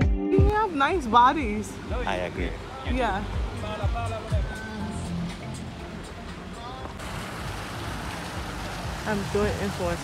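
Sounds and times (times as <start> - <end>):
fountain water splashing into pool: 6.9 - 10.0.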